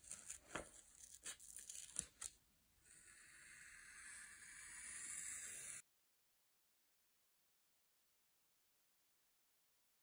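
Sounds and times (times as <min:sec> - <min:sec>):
paper rustling: 0:00.0 - 0:02.4.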